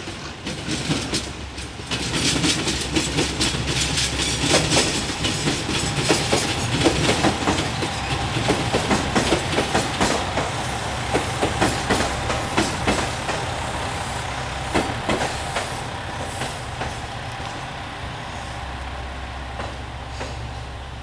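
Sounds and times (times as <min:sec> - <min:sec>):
diesel train engine rumbling: 0:00.0 - 0:21.0
train wheels clacking over rail joints: 0:00.0 - 0:21.0.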